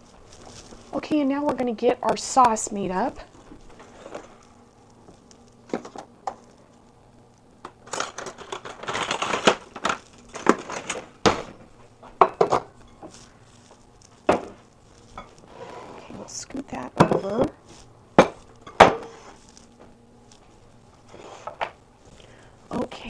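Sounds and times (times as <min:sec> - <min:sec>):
kitchenware clinks and knocks: 0:12.2 - 0:13.1.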